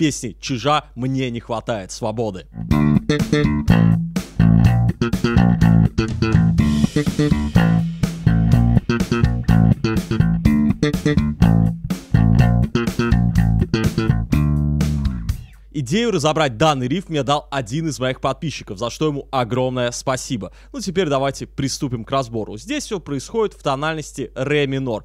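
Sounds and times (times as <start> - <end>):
slap bass riff: 2.5 - 15.6.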